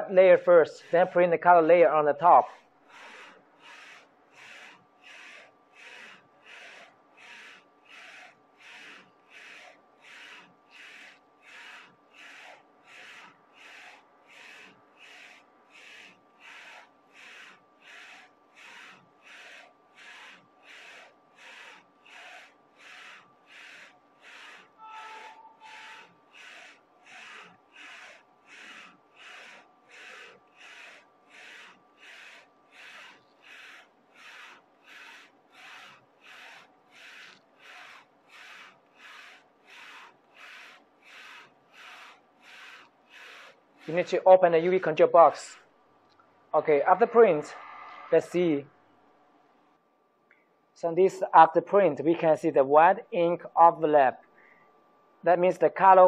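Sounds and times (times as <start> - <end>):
printer carriage whirring back and forth: 0.0 - 49.9.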